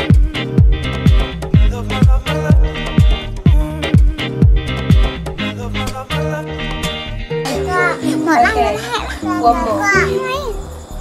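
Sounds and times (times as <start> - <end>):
background music with bass line: 0.0 - 10.1
young children talking: 7.5 - 10.7.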